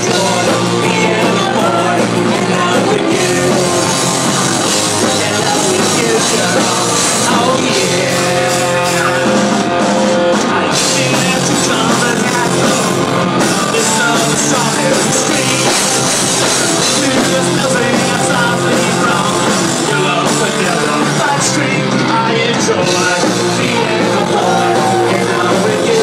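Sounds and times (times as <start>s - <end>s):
electric guitar: 0.0s - 26.0s
live rock band playing: 0.0s - 26.0s
person singing: 0.0s - 26.0s.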